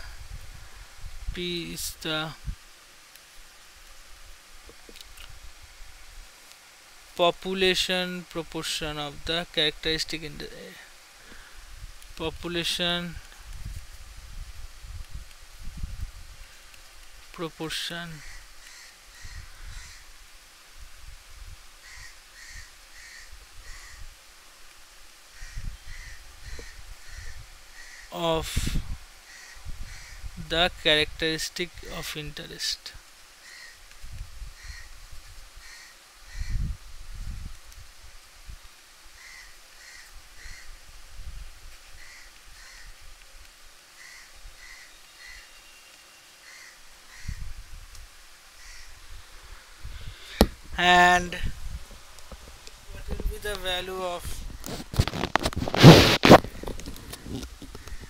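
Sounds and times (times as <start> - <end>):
crow cawing: 18.2 - 20.1, 21.8 - 24.0, 25.4 - 28.1, 29.3 - 30.3, 33.4 - 33.8, 34.6 - 34.9, 35.6 - 36.6, 39.2 - 40.7, 42.0 - 43.0, 44.0 - 45.6, 46.4 - 47.4, 48.6 - 49.0
bird calling: 44.0 - 47.4
low thumps: 50.3 - 50.8.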